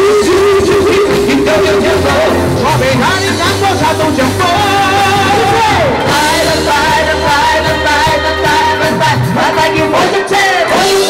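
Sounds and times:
amplified band music: 0.0 - 11.0
people singing pop song: 0.0 - 11.0.

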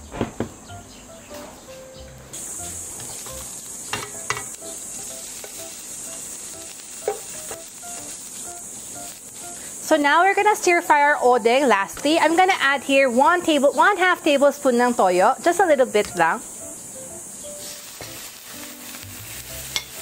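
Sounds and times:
food sizzling in a frying pan: 2.3 - 20.0.

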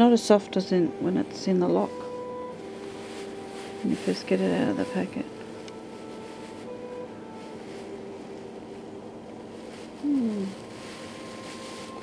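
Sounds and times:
faint steady hum: 0.0 - 12.0
person humming short falling note: 10.0 - 10.7.

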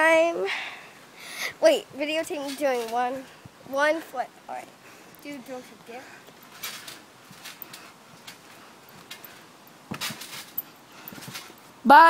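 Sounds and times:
thumps of bouncing on trampoline: 6.3 - 11.6.

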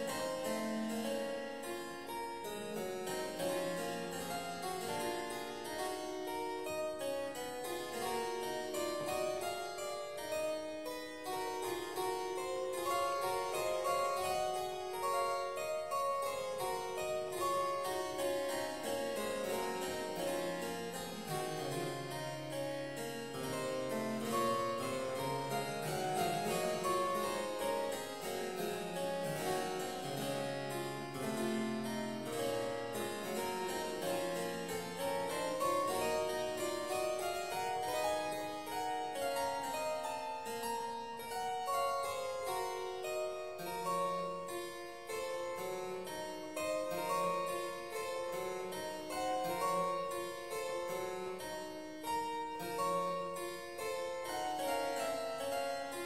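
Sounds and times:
solo harpsichord playing: 0.0 - 56.0.

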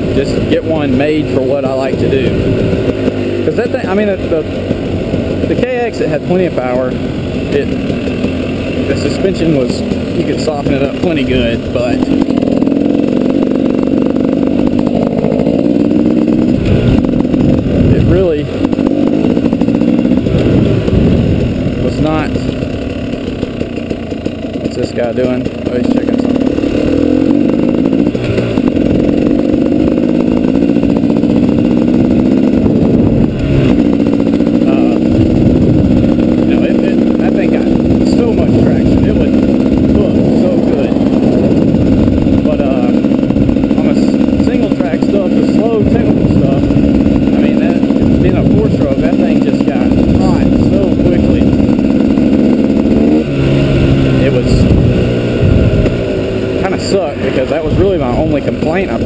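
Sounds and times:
two-stroke motorcycle engine running: 0.0 - 59.0.

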